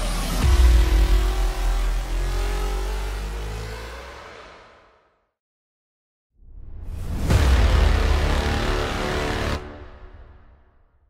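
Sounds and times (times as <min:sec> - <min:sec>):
deep bass boom: 0:00.3 - 0:02.1.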